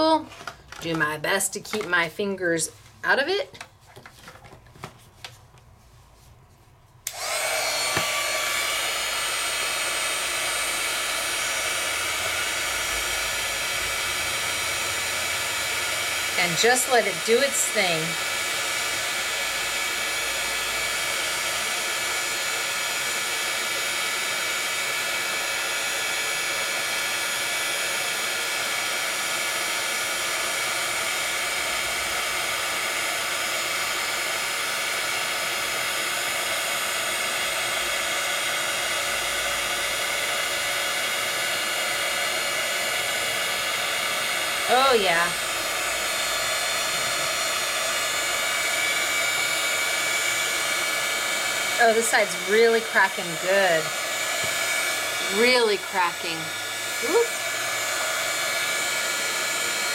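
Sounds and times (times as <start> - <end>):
heat tool blowing hot air: 7.0 - 59.9.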